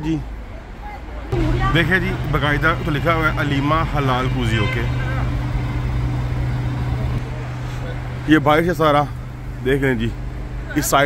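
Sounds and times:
traffic noise: 0:00.0 - 0:11.0
steady low hum: 0:01.4 - 0:10.5.

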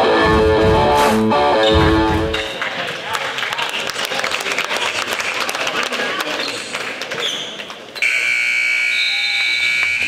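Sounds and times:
scoreboard buzzer blast: 0:08.0 - 0:10.0.

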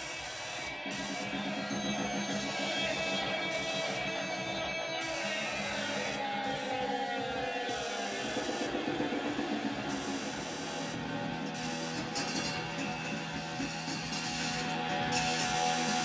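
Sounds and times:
electric guitar and electronics: 0:00.0 - 0:16.0.

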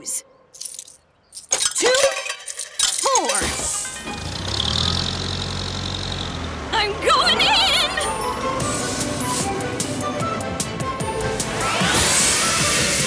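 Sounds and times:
tokens clinking into machine: 0:00.6 - 0:04.0.

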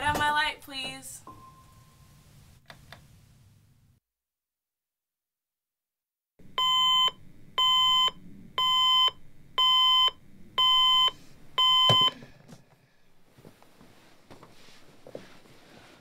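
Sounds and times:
alarm clock beeping: 0:06.6 - 0:12.2
faint rustling: 0:12.5 - 0:16.0.

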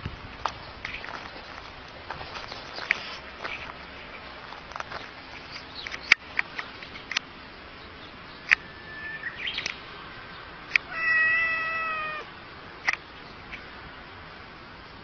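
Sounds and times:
cat meowing: 0:10.9 - 0:12.3.

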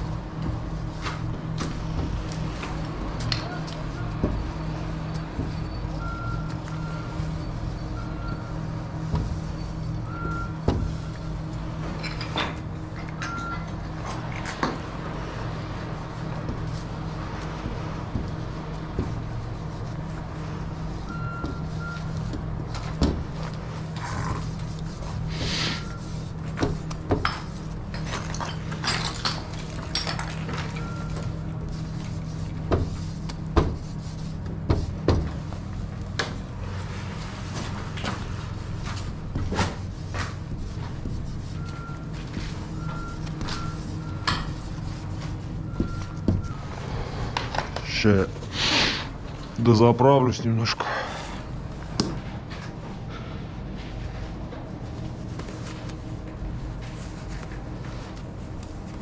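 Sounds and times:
low machine hum: 0:00.0 - 0:59.0.

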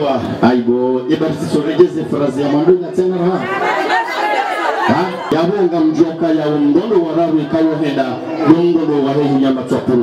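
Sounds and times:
overlapping chatter: 0:01.1 - 0:10.0
man talking: 0:04.8 - 0:10.0.

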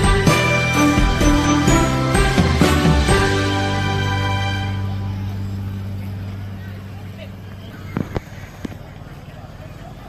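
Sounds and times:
background music: 0:00.0 - 0:06.4
people's voices: 0:00.0 - 0:10.0
road traffic: 0:00.0 - 0:10.0.

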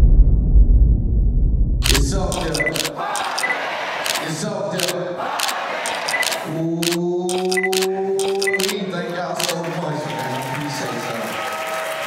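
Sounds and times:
short electronic beeps: 0:01.8 - 0:03.6, 0:05.9 - 0:08.8
camera shutter clicks: 0:01.8 - 0:08.8, 0:09.4 - 0:09.6
people's voices: 0:01.8 - 0:11.2.

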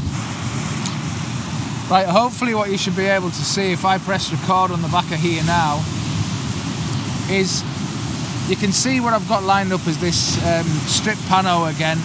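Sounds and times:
surf washing over rocks: 0:00.0 - 0:12.0.

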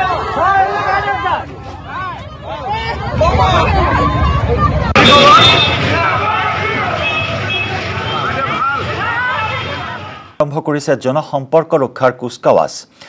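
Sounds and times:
crowd shouting and talking: 0:00.0 - 0:10.4.

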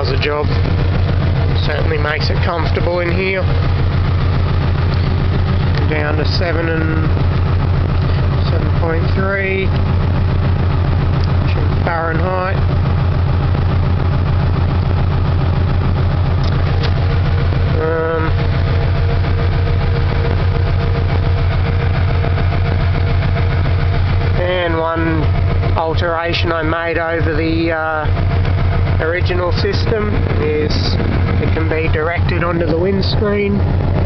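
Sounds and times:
air conditioning blower rushing: 0:00.0 - 0:34.0
car engine idling: 0:00.0 - 0:34.0.

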